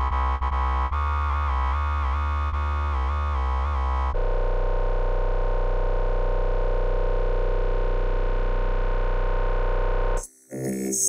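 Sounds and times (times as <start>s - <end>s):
deep bass note: 2.4s - 10.2s
dubstep synth chord: 4.2s - 11.0s.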